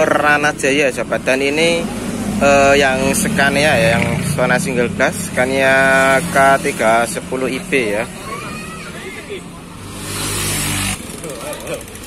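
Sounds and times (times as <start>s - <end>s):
motor scooter engine approaching: 1.2s - 12.0s.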